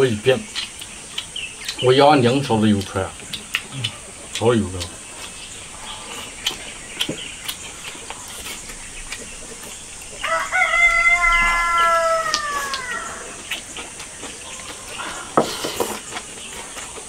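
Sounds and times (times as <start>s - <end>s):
chopsticks clicking on rice bowls: 0.6s - 5.4s
rooster crowing: 10.2s - 13.5s.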